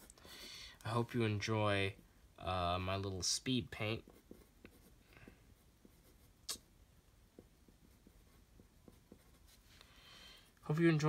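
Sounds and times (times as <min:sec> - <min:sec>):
pencil scratching on paper: 0:03.8 - 0:06.4, 0:07.4 - 0:09.7.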